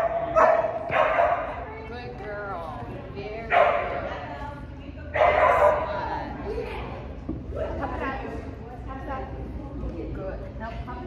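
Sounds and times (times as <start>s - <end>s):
dog barking: 0.0s - 1.5s, 3.5s - 4.0s, 5.2s - 5.9s.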